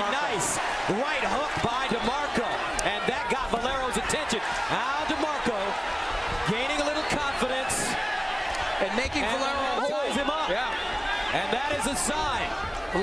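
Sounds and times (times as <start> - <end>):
crowd shouting and yelling: 0.0 - 13.0.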